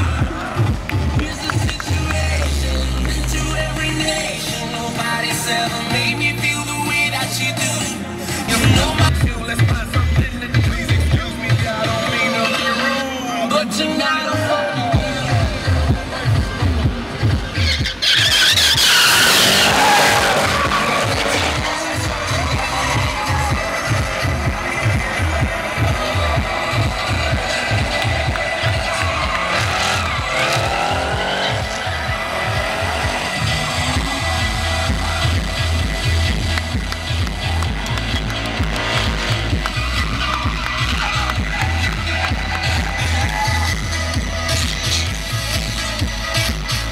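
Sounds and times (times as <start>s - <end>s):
music with steady beat: 0.0s - 12.3s, 13.8s - 18.0s, 19.3s - 46.9s
car engines revving: 0.0s - 46.9s
tyres squealing: 17.6s - 23.2s.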